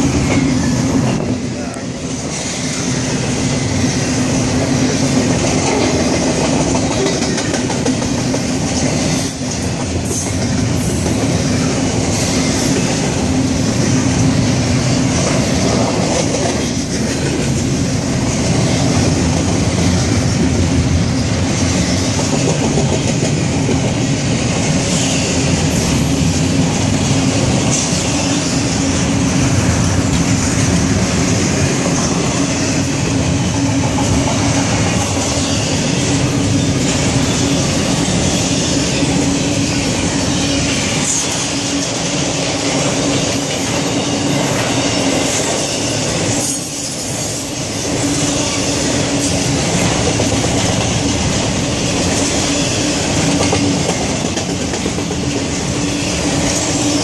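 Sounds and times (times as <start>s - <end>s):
freight train wheels clickety-clack: 0.0s - 57.0s.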